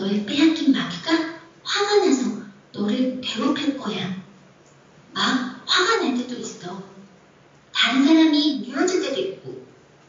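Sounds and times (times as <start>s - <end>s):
person talking: 0.0s - 4.2s, 5.1s - 7.0s, 7.8s - 9.7s.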